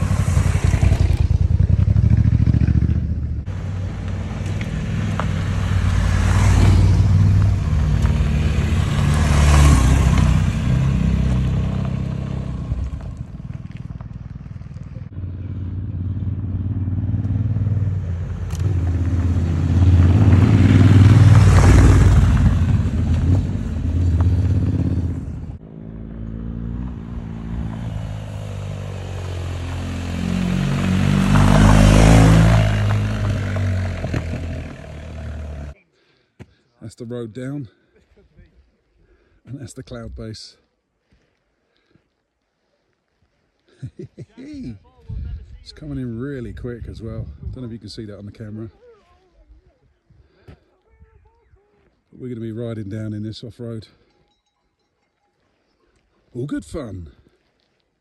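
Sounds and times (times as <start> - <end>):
motorcycles riding past on gravel: 0.0 - 35.8.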